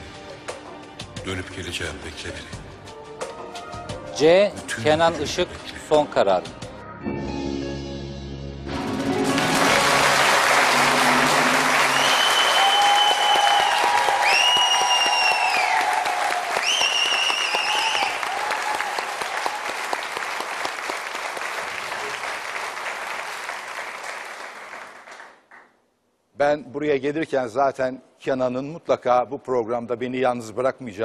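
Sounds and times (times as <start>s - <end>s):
studio audience applauding: 9.0s - 25.8s.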